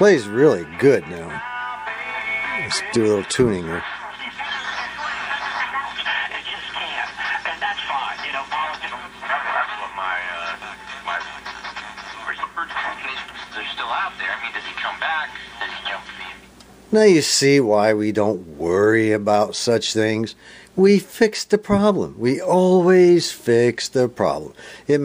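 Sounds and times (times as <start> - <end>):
steady low hum: 0.0 - 25.0
voice talking on radio: 2.4 - 16.5.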